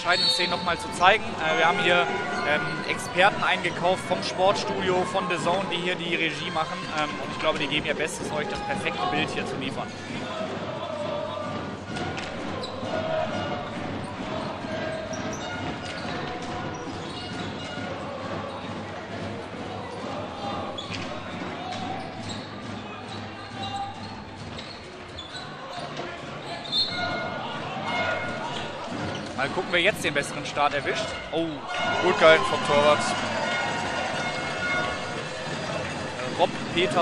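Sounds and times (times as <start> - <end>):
voices calling: 0.0 - 11.6.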